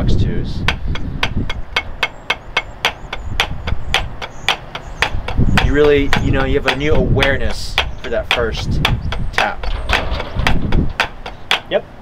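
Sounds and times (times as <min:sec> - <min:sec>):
drumsticks tapping practice pad: 0:00.6 - 0:11.9.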